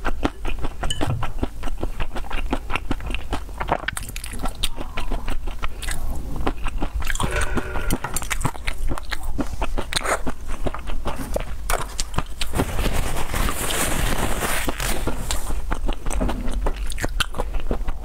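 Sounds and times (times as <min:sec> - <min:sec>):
mouth chewing with wet smacks: 0:00.0 - 0:07.4, 0:08.1 - 0:12.5, 0:15.0 - 0:18.0
tissue rustling: 0:12.5 - 0:15.6.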